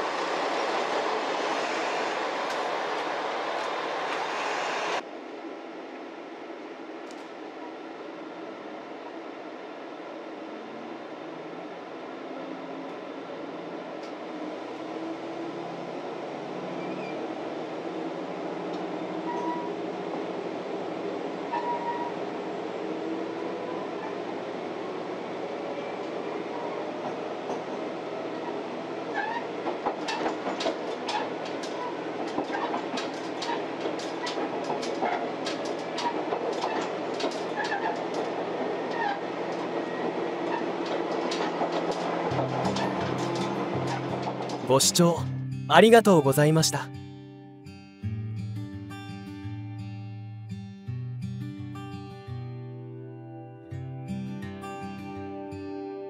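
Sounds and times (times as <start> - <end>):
diesel railcar engine accelerating: 0.0 - 44.7
wheels clicking over rail joints: 29.1 - 44.7.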